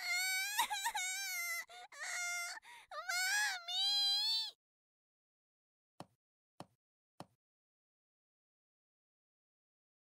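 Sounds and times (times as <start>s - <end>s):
child wailing: 0.0s - 4.5s.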